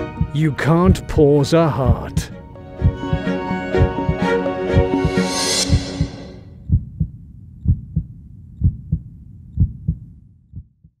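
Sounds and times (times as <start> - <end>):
heartbeat sound effect: 0.0 - 1.1, 1.8 - 11.0
music: 0.0 - 6.6.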